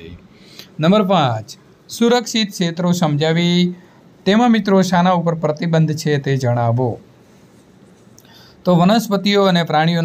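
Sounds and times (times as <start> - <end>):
person speaking: 0.0 - 7.1
faint room hiss: 0.0 - 10.0.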